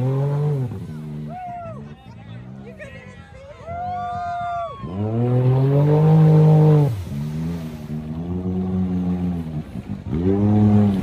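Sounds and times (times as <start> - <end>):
utv engine revving hard: 0.0 - 1.3, 4.9 - 11.0.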